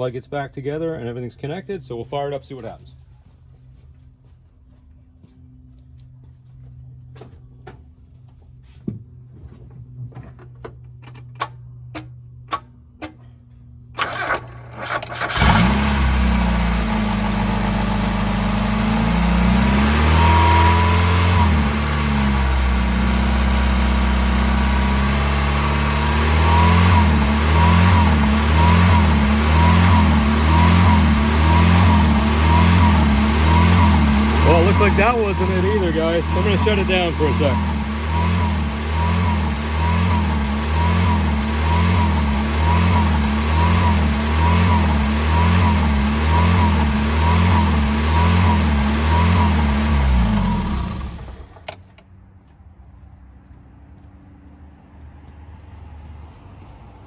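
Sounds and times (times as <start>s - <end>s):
car engine cranking and starting: 13.9s - 52.1s
car engine hunting idle: 14.0s - 51.7s.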